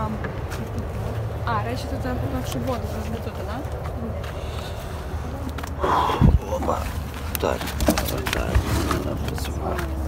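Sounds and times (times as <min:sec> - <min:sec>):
clicks and rustles: 0:06.7 - 0:10.0.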